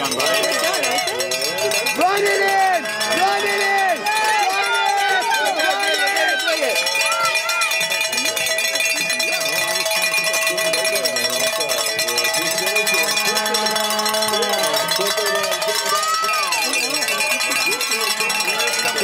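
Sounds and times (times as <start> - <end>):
cowbells ringing: 0.0 - 19.0
crowd shouting and cheering: 0.0 - 19.0.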